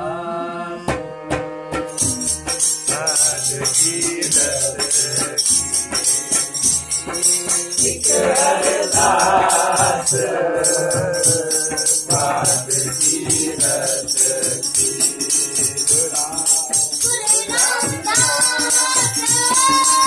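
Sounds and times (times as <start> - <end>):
harmonium: 0.0 - 20.0
jingling hand percussion: 1.3 - 20.0
boy singing: 2.0 - 20.0.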